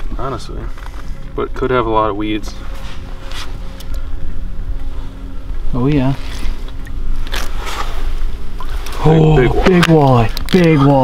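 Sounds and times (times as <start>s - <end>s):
fishing line splashing: 6.2s - 10.6s.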